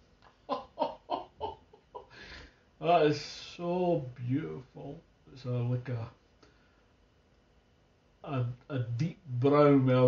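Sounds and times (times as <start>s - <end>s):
man chuckling: 0.3s - 2.5s.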